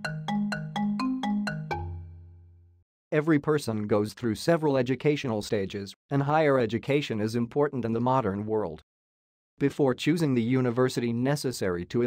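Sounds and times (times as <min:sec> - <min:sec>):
plucked notes music jingle: 0:00.0 - 0:02.8.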